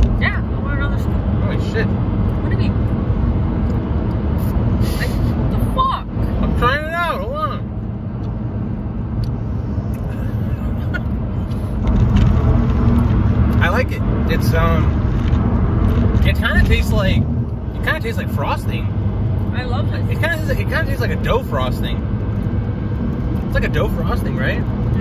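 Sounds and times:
car engine rumble: 0.0 - 25.0
road noise inside car: 0.0 - 25.0.

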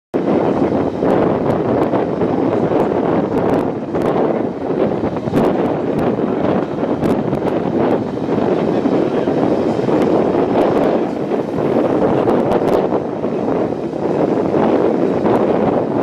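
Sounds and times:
wind buffeting microphone: 0.1 - 16.0
train running noise: 0.2 - 16.0.

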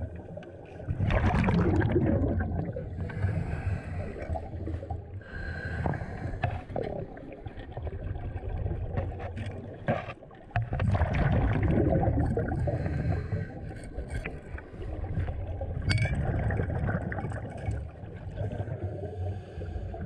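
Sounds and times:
exhaled bubbles underwater: 0.0 - 20.0.

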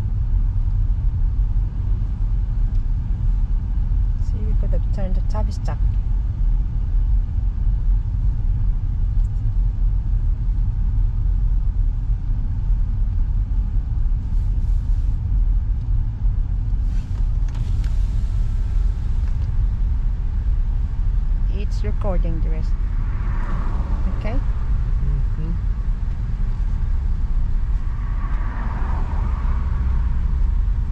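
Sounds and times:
car rumble from inside cabin: 0.0 - 30.9.

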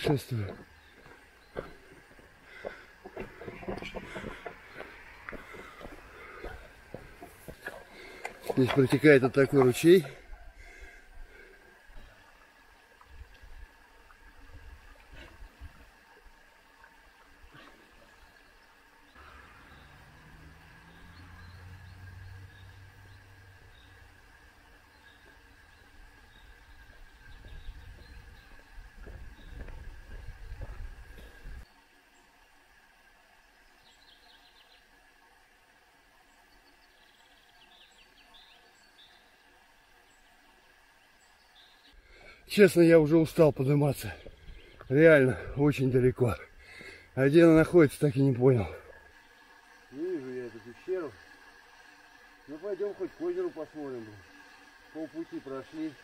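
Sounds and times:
high insect drone: 10.6 - 32.3, 43.8 - 56.0
low rumble on microphone: 25.0 - 31.6.

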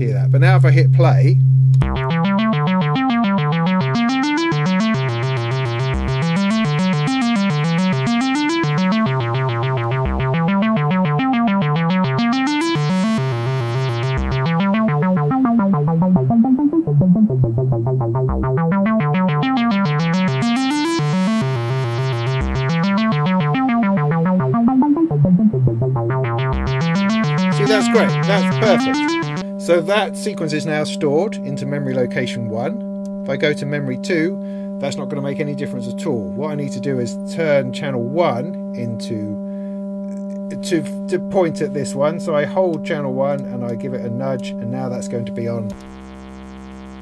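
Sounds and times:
steady low synth note: 0.2 - 29.5
synthesizer note sequence: 1.7 - 30.0, 45.6 - 47.0.

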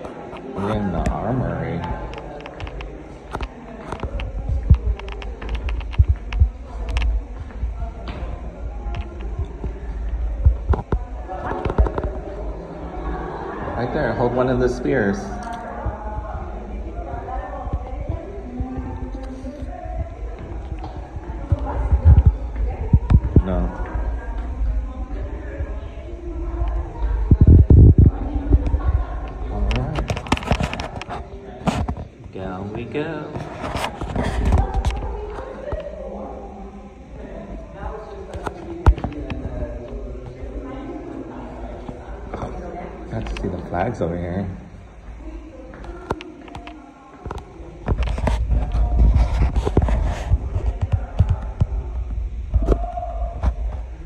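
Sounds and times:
faint voices: 0.0 - 54.0
people talking: 0.0 - 54.0
footsteps on stone floor: 1.8 - 12.3.

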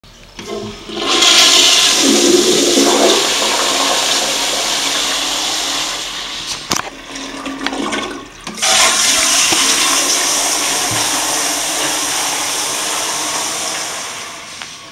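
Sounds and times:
toilet flushing: 0.3 - 14.9.

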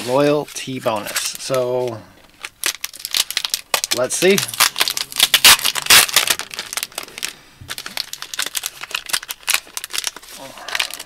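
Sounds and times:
foil packet crinkling: 0.0 - 11.0.

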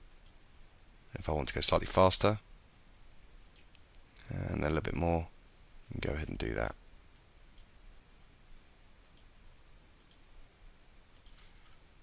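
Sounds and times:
computer mouse clicks: 0.0 - 0.4, 3.4 - 4.0, 9.0 - 9.3, 10.0 - 10.2, 11.1 - 11.6.

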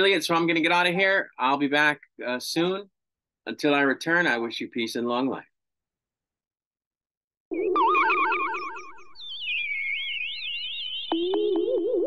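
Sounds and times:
warbling electronic tones: 7.5 - 12.0.

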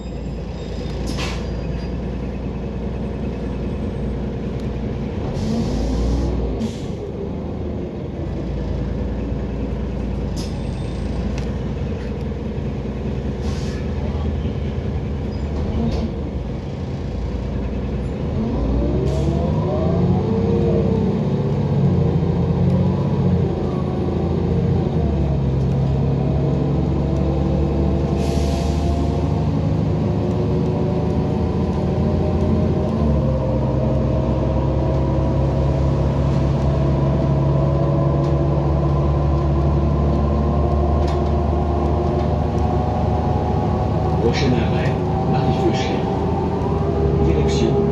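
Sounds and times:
bus engine: 0.0 - 47.9
road noise: 0.0 - 47.9.

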